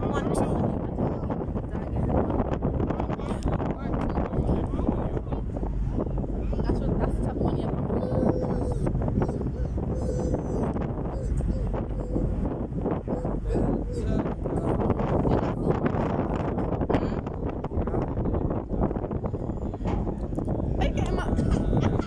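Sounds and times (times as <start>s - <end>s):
indistinct voices: 0.0s - 22.0s
low boat rumble: 0.0s - 22.0s
wind buffeting microphone: 0.0s - 22.0s.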